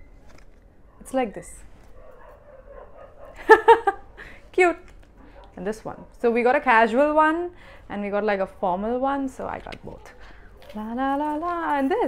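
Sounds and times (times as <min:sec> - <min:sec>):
dog barking: 0:01.9 - 0:03.5, 0:05.2 - 0:05.6.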